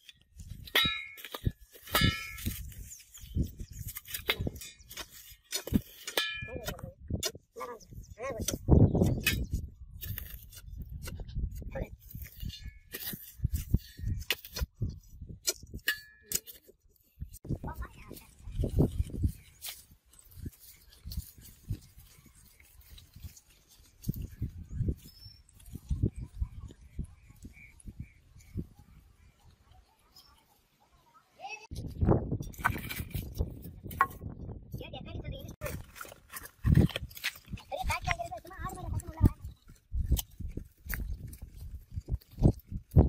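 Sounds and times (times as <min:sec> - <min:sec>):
person talking: 0:17.6 - 0:18.5, 0:37.6 - 0:39.5.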